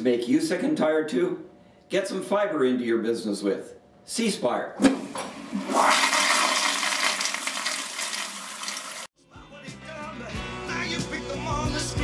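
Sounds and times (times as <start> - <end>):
toilet flushing: 4.8 - 9.1.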